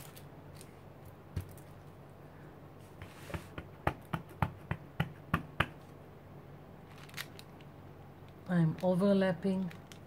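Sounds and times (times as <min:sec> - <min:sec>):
stamp tapping on ink pad: 0:03.3 - 0:05.8.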